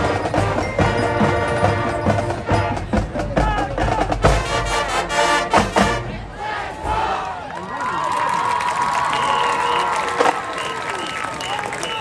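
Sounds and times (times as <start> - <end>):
marching band brass and drums: 0.0 - 7.3, 9.6 - 12.0
crowd cheering and shouting: 3.1 - 4.3, 6.1 - 12.0.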